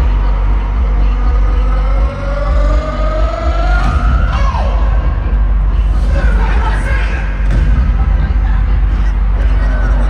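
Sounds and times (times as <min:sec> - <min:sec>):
deep steady bass: 0:00.0 - 0:10.0.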